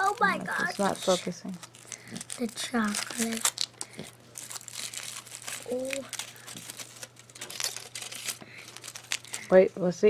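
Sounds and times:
foil wrapper crinkling: 0.0 - 9.6.

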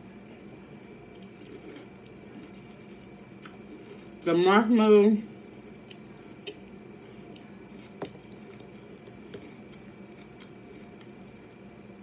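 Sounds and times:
chewing crunchy cereal: 0.5 - 4.3, 5.4 - 11.6.

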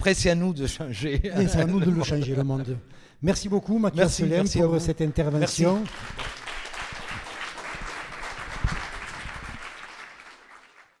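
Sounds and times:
audience applauding: 5.6 - 11.0.

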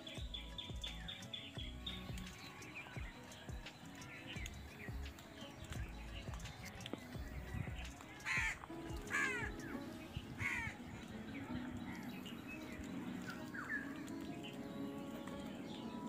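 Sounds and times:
birds calling: 0.0 - 16.0.

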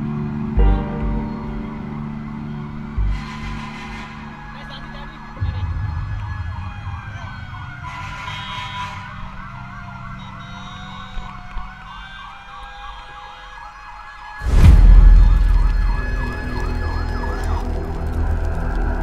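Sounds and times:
emergency vehicle sirens wailing: 1.8 - 19.0
loud low rumble: 14.4 - 19.0.

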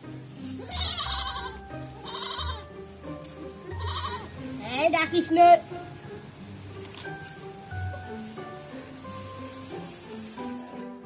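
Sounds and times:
background music: 0.0 - 11.0
goats bleating: 0.6 - 2.8, 3.7 - 4.4.

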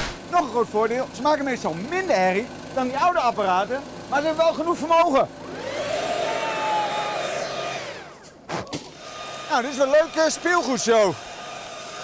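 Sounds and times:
leaf blower whining: 0.0 - 12.0.

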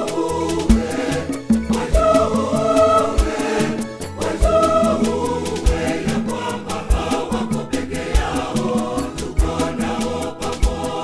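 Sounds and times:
backing band: 0.0 - 11.0
choir singing gospel song: 0.0 - 11.0.

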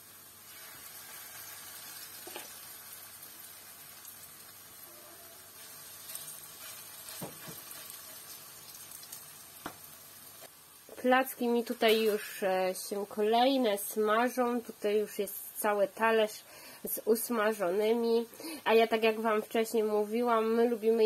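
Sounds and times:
pancakes sizzling in oil: 0.0 - 12.8.

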